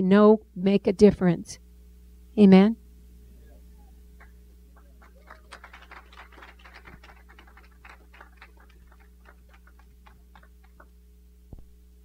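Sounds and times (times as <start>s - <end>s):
low electrical hum: 0.0s - 12.0s
faint scattered clapping: 4.2s - 11.6s.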